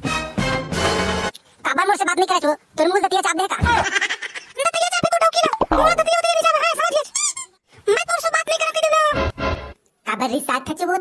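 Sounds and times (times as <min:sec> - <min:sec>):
squeaky cartoon voice chattering: 0:05.4 - 0:07.6.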